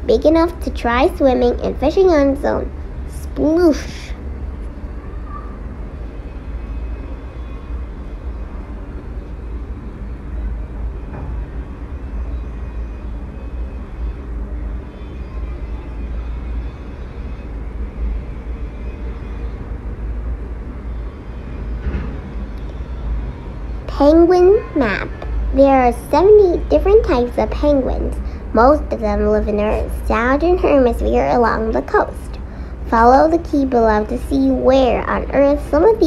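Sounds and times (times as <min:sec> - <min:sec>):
low rumble of background noise: 0:00.0 - 0:36.0.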